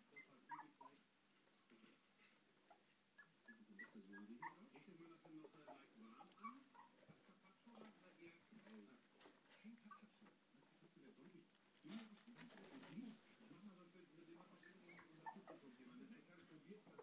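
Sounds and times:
puppies whimpering: 0.0 - 1.0, 2.7 - 8.0, 14.6 - 15.7.

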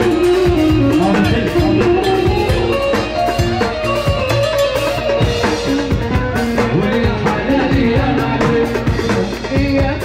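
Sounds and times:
melodic instrument with bending notes: 0.0 - 10.0
steady drum beat: 0.0 - 10.0.

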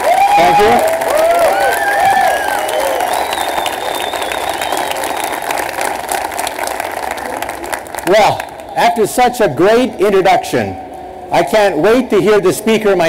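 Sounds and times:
audience applauding: 0.0 - 8.8.

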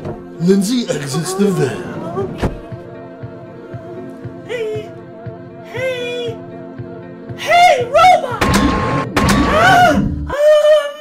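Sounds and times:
background music: 0.0 - 11.0
short wordless voice: 0.5 - 2.0.

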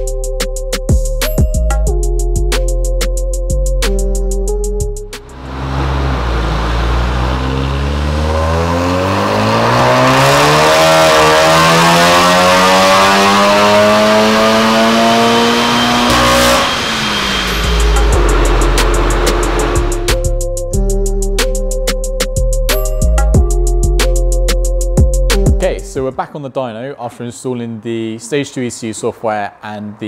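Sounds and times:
background music: 0.0 - 5.6, 8.3 - 26.5
car engine revving at full throttle: 5.2 - 20.4.

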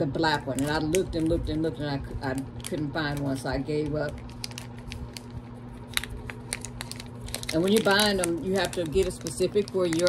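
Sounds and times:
faint steady hum: 0.0 - 10.0
light clicks and crinkles: 2.3 - 10.0.

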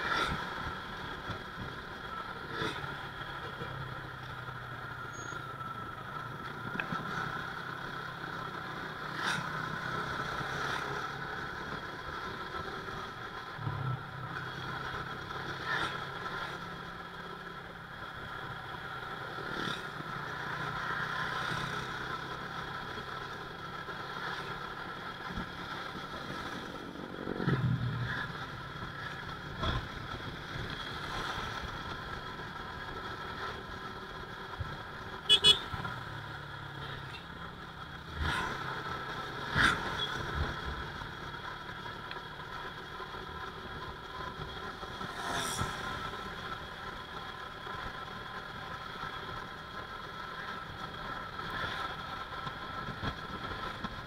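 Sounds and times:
motorcycle engine running: 0.0 - 54.0
passing traffic: 0.0 - 54.0
road noise: 0.0 - 54.0.

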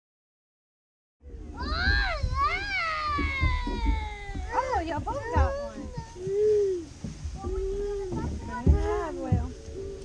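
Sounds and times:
child squealing: 1.6 - 6.8.

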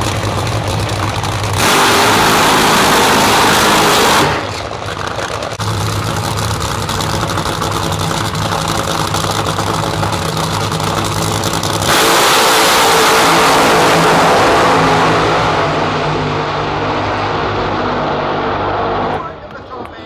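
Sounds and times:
drag racing engines roaring: 0.0 - 20.0.

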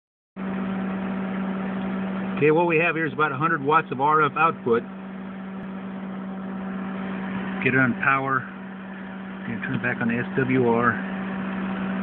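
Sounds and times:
cooling fans whirring: 0.4 - 12.0
electrical hum: 0.4 - 12.0.

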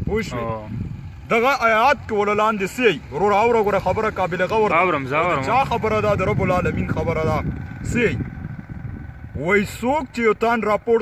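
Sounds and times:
low rumbling noise: 0.0 - 11.0.

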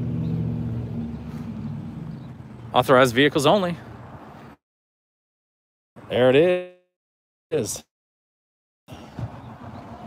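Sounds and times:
vehicle engine humming: 0.0 - 4.6.

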